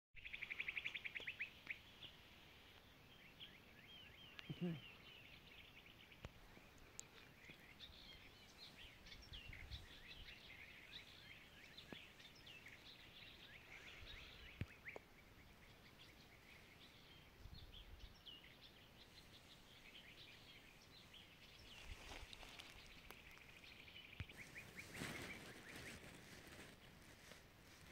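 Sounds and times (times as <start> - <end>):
birds chirping: 0.2 - 27.9.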